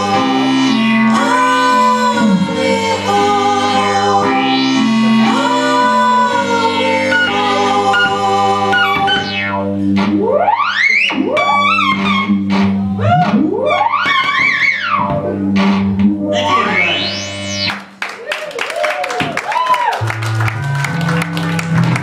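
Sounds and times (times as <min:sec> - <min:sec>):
electric keyboard pitch sweeps: 0:00.0 - 0:17.9.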